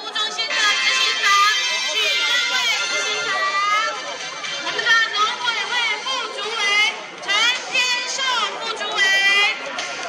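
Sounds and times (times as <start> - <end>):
crowd calling out and chattering: 0.0 - 10.0.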